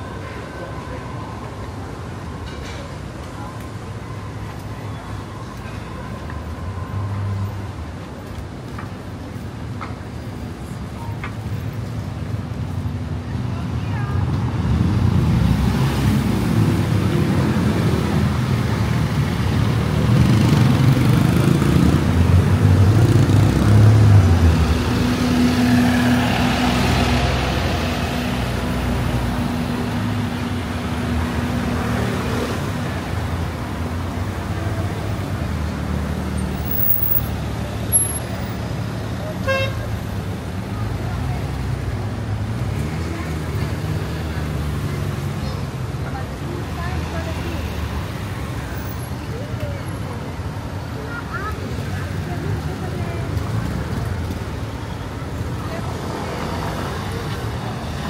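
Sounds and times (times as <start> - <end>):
traffic hum: 0.0 - 58.0
motorcycles and cars passing: 10.6 - 58.0
car horn beep: 39.4 - 39.8.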